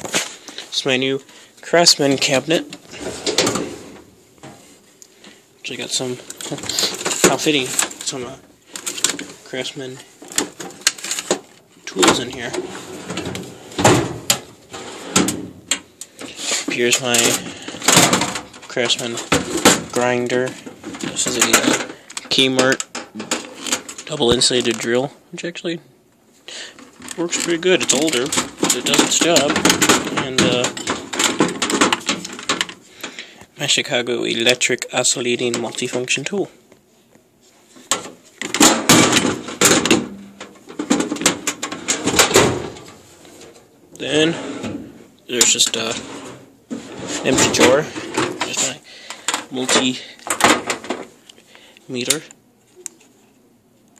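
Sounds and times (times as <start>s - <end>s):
metal drawers sliding: 2.0s - 4.7s, 5.7s - 24.7s, 27.0s - 32.7s, 37.9s - 48.8s
metal drawer sliding open: 2.7s - 4.6s, 11.9s - 15.8s, 44.2s - 48.7s
metal clanks and rattles: 26.8s - 32.8s.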